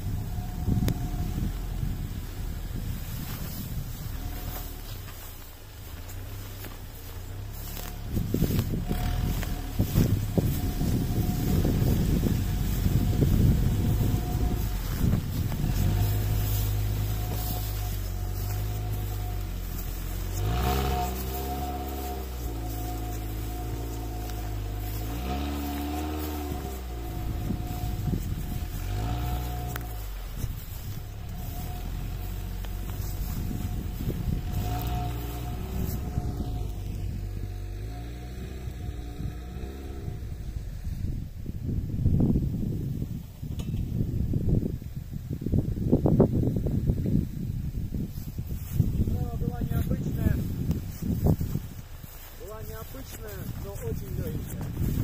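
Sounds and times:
quad bike engine revving: 0.0s - 5.0s, 7.5s - 41.2s
rustling: 0.0s - 41.1s, 48.0s - 55.0s
wind: 0.0s - 55.0s.

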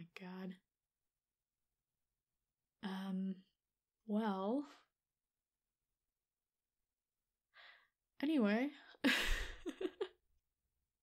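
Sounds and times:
woman breathing softly: 7.5s - 8.0s.

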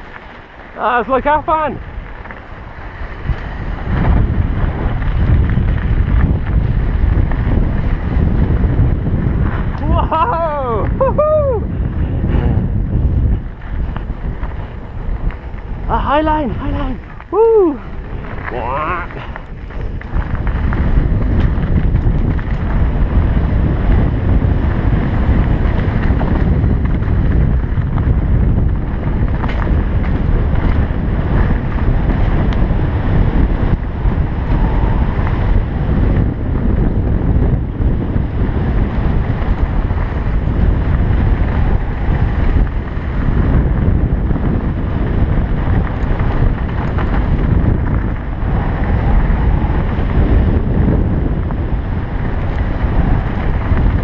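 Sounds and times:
bike rumbling and rattling on dirt: 0.0s - 54.0s
wind noise on microphone: 0.0s - 54.0s.

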